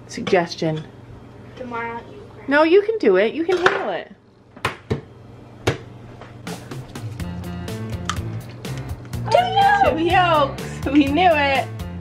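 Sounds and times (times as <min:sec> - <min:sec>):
egg knocked against frying pan: 0:04.6 - 0:05.9
background music with steady beat: 0:05.8 - 0:12.0
egg cracking clicks: 0:07.9 - 0:09.2.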